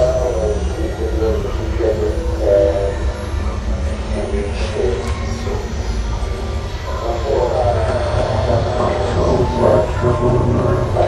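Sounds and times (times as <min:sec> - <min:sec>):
low rumbling drone: 0:00.0 - 0:11.0
wavering voice-like tones: 0:00.0 - 0:11.0.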